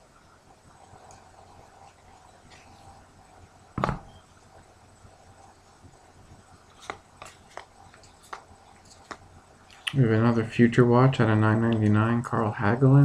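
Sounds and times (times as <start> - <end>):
cards flipped through by hand: 6.7 - 9.2.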